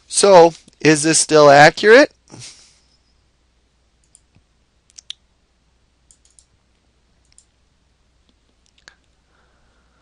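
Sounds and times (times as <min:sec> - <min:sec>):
computer mouse clicks: 0:04.0 - 0:05.2, 0:06.0 - 0:06.6, 0:07.2 - 0:07.6.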